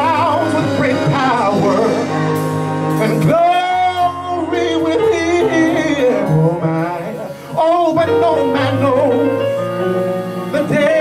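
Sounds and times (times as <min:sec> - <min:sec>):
man singing gospel runs: 0:03.0 - 0:09.6.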